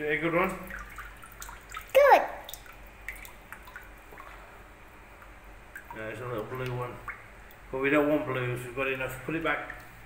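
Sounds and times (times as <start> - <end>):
water dripping from net: 0.0 - 7.8, 9.2 - 10.0.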